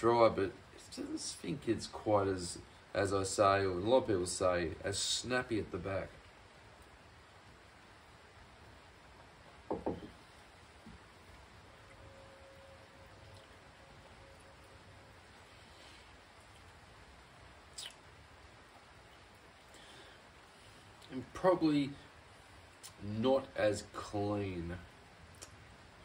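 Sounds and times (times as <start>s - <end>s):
soft low knocks: 9.7s - 10.2s.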